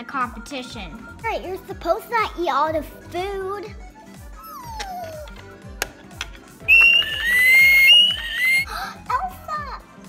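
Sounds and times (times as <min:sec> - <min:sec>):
background music with beat: 0:00.7 - 0:08.8
loud high-pitched whistle: 0:06.7 - 0:08.7.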